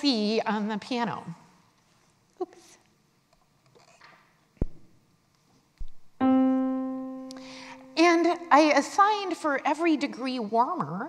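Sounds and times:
electric keyboard note: 6.2 - 8.5.

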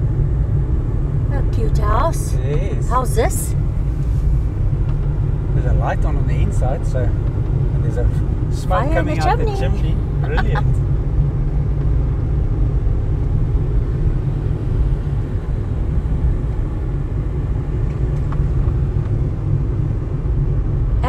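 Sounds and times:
car road and engine rumble: 0.0 - 21.0.

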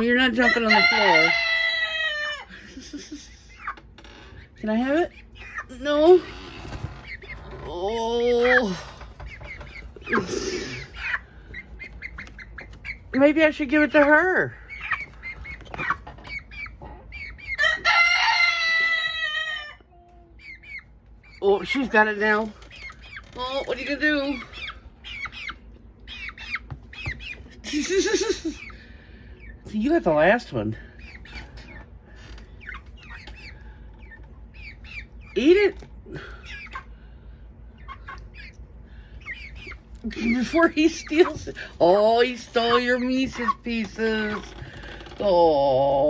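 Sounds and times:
chicks chirping: 0.0 - 46.0
chicken squawk: 0.3 - 4.6, 8.2 - 13.1, 14.4 - 22.1, 22.7 - 29.6, 37.7 - 44.6.

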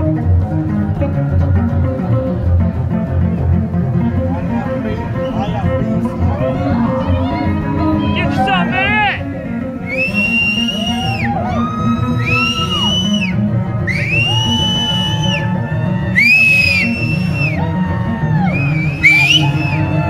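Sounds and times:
distorted electric bass: 0.0 - 20.0.

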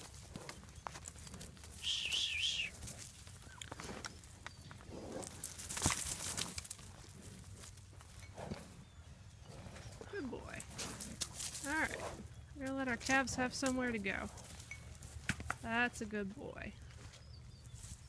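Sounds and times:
hoof steps on dirt: 0.0 - 15.8, 16.7 - 18.0
high warbling call: 1.8 - 2.7.

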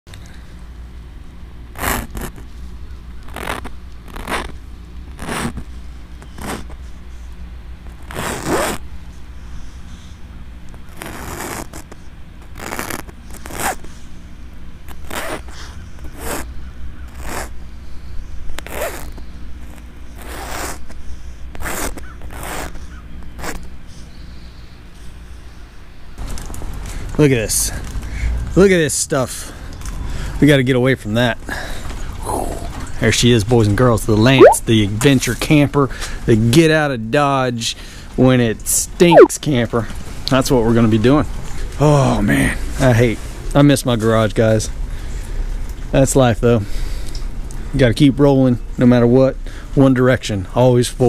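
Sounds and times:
fingertip scraping through frost: 3.3 - 4.5.

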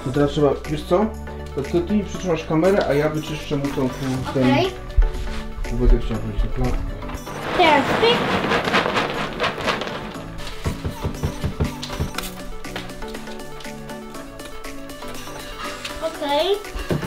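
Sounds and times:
background music: 0.0 - 17.0
pellets and hay pouring into bag: 7.2 - 10.6.

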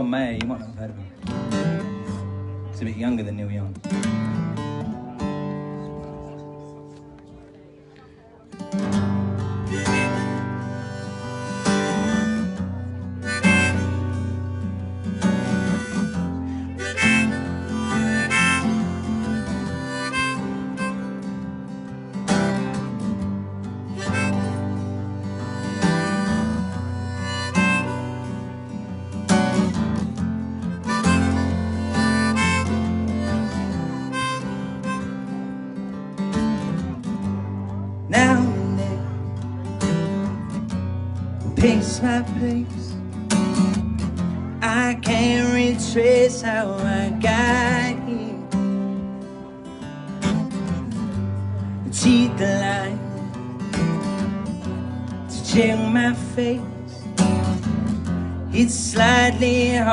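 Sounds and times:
strummed acoustic guitar: 0.0 - 59.9
harmonica melody: 9.0 - 59.9.

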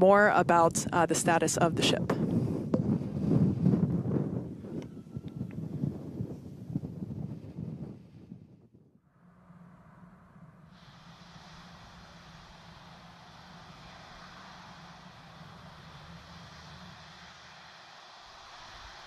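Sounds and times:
wind buffeting microphone: 0.2 - 8.9, 10.7 - 19.0
steady hiss with low hum: 9.2 - 19.0.

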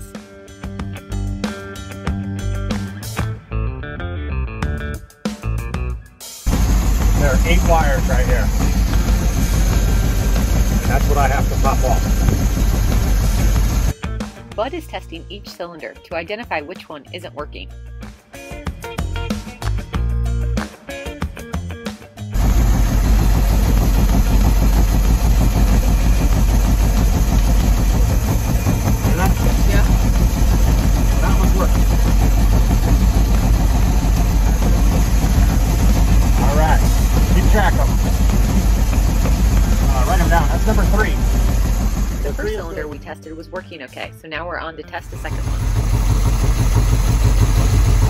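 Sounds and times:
boat engine running loud: 6.5 - 14.0, 22.4 - 43.6, 44.9 - 48.0.

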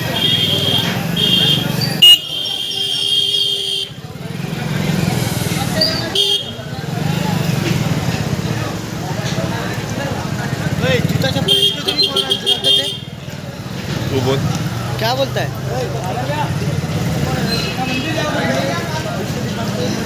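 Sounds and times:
motorcycle horn beeping: 0.0 - 4.0, 5.8 - 6.7, 11.4 - 13.2
crowd chatter: 0.0 - 20.0
motorcycle engines running: 0.0 - 20.0.

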